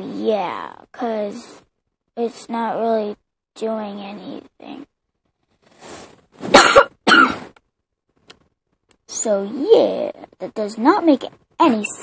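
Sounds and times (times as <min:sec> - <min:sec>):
person coughing: 0:06.5 - 0:07.5.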